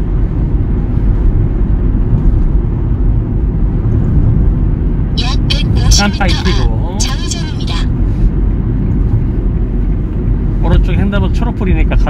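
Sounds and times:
car engine and tyre rumble: 0:00.0 - 0:05.2, 0:08.3 - 0:12.0.

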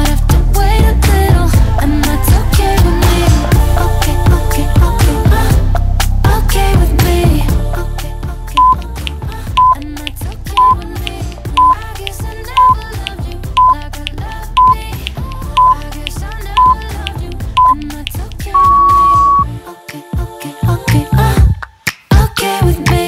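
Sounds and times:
background pop music: 0:00.0 - 0:23.0
timer short beeps: 0:08.6 - 0:08.8, 0:09.6 - 0:09.8, 0:10.6 - 0:10.8, 0:11.6 - 0:11.8, 0:12.6 - 0:12.8, 0:13.6 - 0:13.8, 0:14.6 - 0:14.8, 0:15.6 - 0:15.8, 0:16.6 - 0:16.8, 0:17.6 - 0:17.8, 0:18.6 - 0:19.5
timer long beep: 0:11.6 - 0:11.8, 0:12.6 - 0:12.8, 0:13.6 - 0:13.8, 0:15.6 - 0:15.8, 0:16.6 - 0:16.8, 0:17.6 - 0:17.8, 0:18.6 - 0:19.5.

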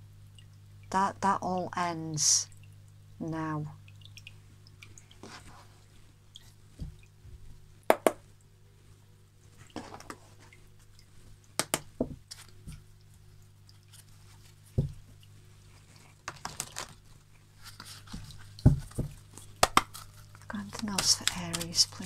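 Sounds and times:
card deck knocking on table: 0:07.9 - 0:08.2.

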